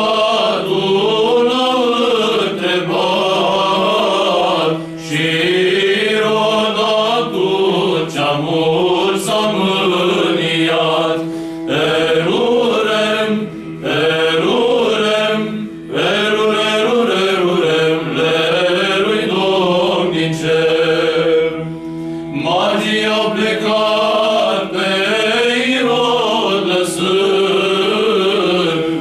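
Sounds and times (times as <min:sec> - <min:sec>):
male choir singing a cappella: 0:00.0 - 0:29.0.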